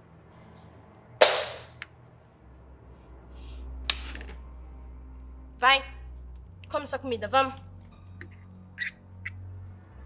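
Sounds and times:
hand slap: 0:01.2 - 0:01.8.

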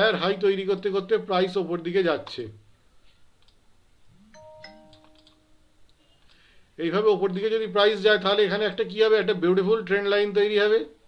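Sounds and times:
faint two-note chime: 0:04.2 - 0:05.6.

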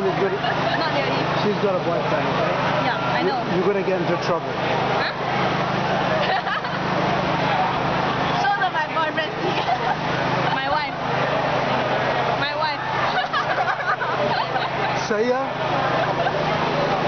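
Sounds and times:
crowd chatter: 0:00.0 - 0:17.0
nearby voices and laughter: 0:06.0 - 0:07.1, 0:09.2 - 0:10.8, 0:12.8 - 0:17.0.

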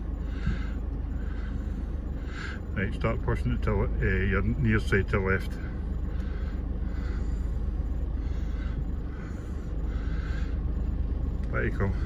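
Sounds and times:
engine rumble inside vehicle cabin: 0:00.0 - 0:12.0.

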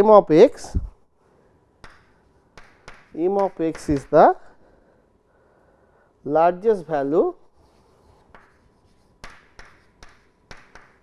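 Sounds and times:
chalk tapping on chalkboard: 0:01.8 - 0:04.4, 0:07.8 - 0:11.0.

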